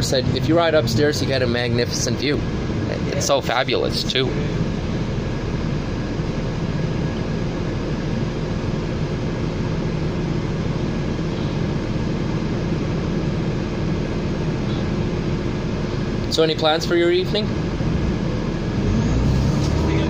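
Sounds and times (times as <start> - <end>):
bus engine drone inside cabin: 0.0 - 20.0.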